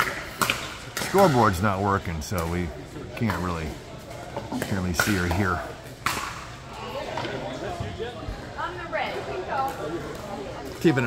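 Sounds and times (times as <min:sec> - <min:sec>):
players talking in echoing hall: 0:00.0 - 0:11.0.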